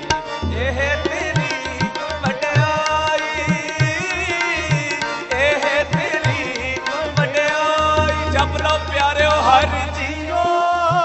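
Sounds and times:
harmonium drones: 0.0s - 11.0s
tabla: 0.0s - 11.0s.

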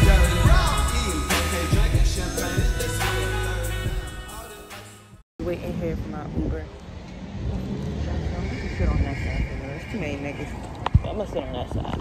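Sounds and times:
road traffic rumble: 5.4s - 12.0s.

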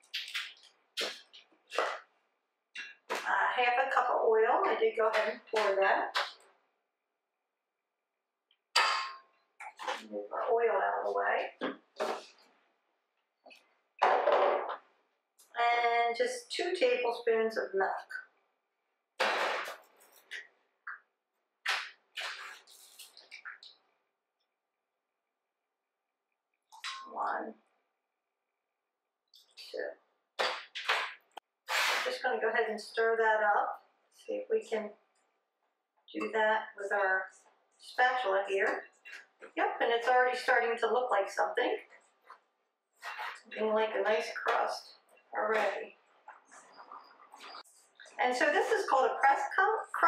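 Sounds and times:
kitchen items knocking and rustling: 14.0s - 14.9s.

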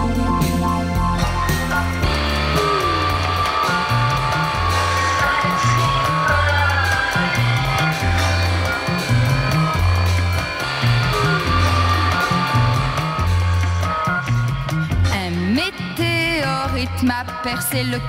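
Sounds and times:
repeating bass line: 0.0s - 17.2s
instrumental runway music: 0.0s - 18.0s
sustained high tones: 1.9s - 16.0s.

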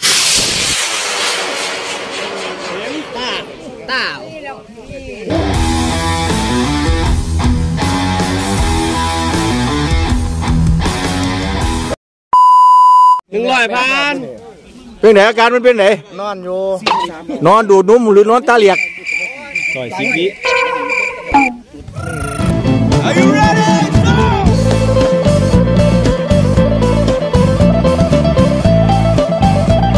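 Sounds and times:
rocket motor rushing hiss: 0.0s - 3.9s
electronic beep: 12.4s - 13.2s, 18.8s - 21.6s
man calling out: 22.0s - 24.6s.

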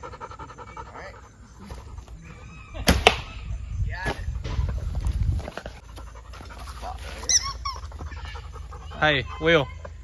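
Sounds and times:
dog panting: 0.0s - 2.4s, 5.6s - 9.5s
dog whining: 7.2s - 8.9s.

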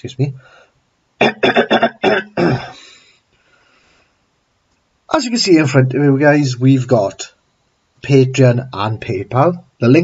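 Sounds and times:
man clearing his throat: 1.2s - 2.9s.

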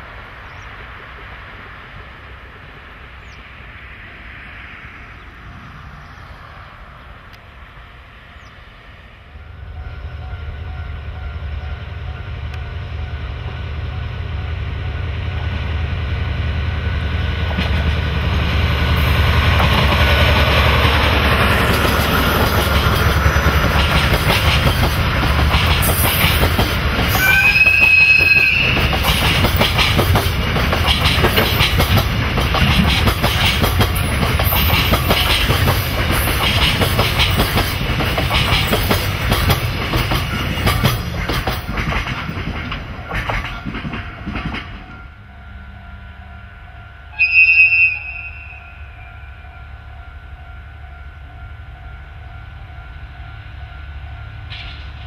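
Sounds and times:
diesel locomotive passing: 0.0s - 55.0s
wagon wheels clicking over rail joints: 21.5s - 27.9s, 28.6s - 44.9s
train horn blast: 27.1s - 28.9s, 45.2s - 53.1s.

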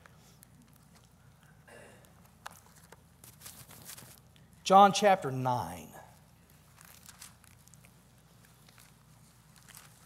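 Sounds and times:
low steady hum: 0.0s - 10.0s
pages turning: 2.2s - 4.4s, 6.4s - 10.0s.

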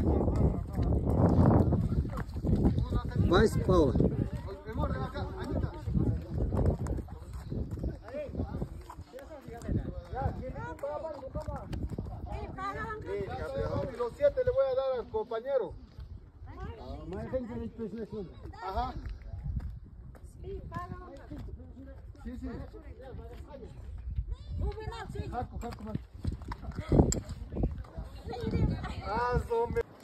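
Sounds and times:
horse hooves on stony ground: 0.0s - 14.4s, 18.3s - 30.0s
people talking: 26.6s - 29.8s.

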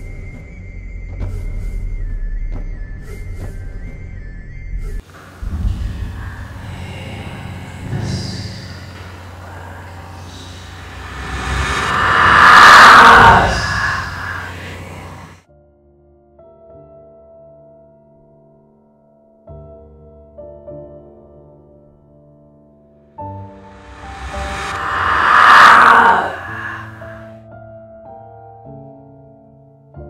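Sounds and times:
low drone: 5.0s - 15.4s, 23.5s - 27.3s
noisy rushing swell: 5.1s - 15.4s, 23.6s - 27.3s.

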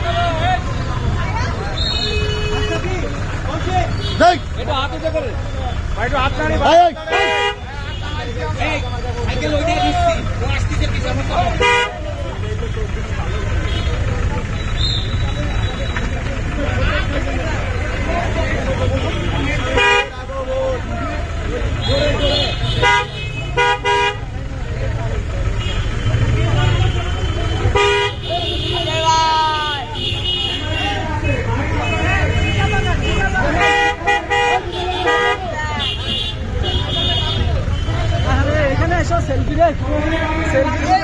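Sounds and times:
crowd chatter and shouting: 0.0s - 41.0s
vehicle engine rumble: 0.0s - 41.0s
vehicle horns honking: 1.7s - 3.1s, 3.8s - 4.8s, 6.2s - 10.3s, 11.4s - 12.2s, 13.4s - 16.1s, 18.7s - 20.3s, 21.8s - 24.4s, 25.4s - 38.6s.

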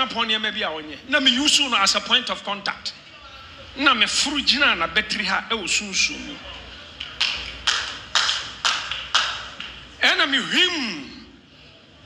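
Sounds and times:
hand claps with echo: 6.9s - 10.0s.

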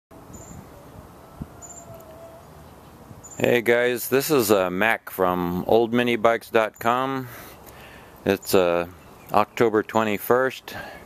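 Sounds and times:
outdoor background noise: 0.1s - 11.0s.

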